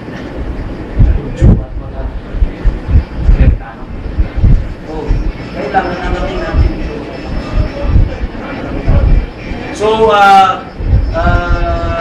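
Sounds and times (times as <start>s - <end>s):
low rumbling background noise: 0.0s - 12.0s
dull low thumps: 0.8s - 5.4s, 7.5s - 9.4s, 10.7s - 11.7s.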